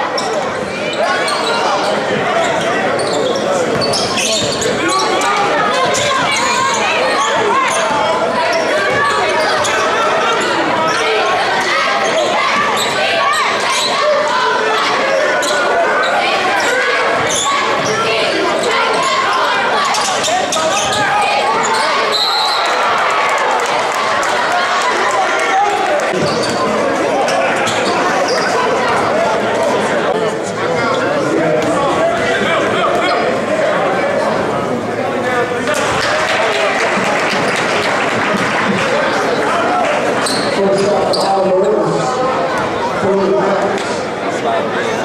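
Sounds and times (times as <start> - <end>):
echoing crowd and player voices: 0.0 - 45.0.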